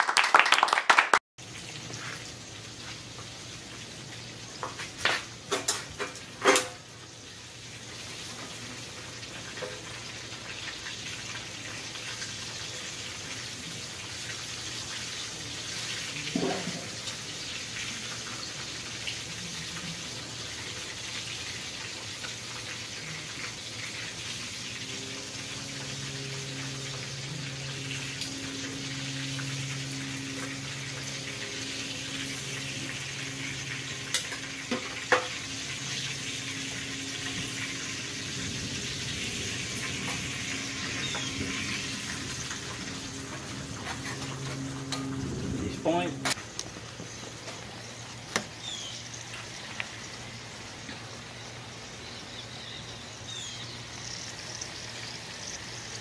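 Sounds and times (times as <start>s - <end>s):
food sizzling in a frying pan: 1.4s - 56.0s
steady rain: 11.5s - 56.0s.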